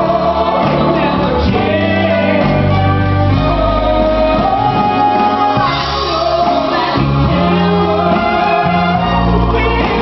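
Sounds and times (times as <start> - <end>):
band with held bass notes: 0.0 - 10.0
voices singing sustained notes: 0.0 - 10.0.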